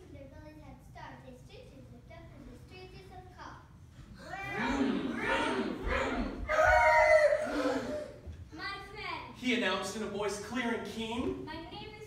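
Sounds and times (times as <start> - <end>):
voices making wordless calls: 4.2 - 8.2.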